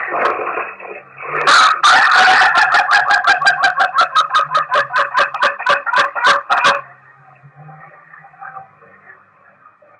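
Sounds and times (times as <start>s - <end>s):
rooster crowing: 1.5s - 6.8s.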